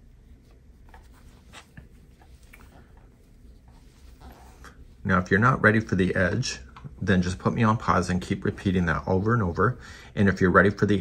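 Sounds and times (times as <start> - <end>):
yarn rubbing and rustling: 0.0 - 9.7.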